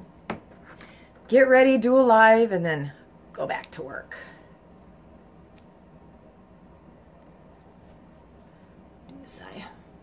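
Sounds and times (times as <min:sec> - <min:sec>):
faint room hiss: 0:00.0 - 0:10.0
woman whispering: 0:09.0 - 0:10.0.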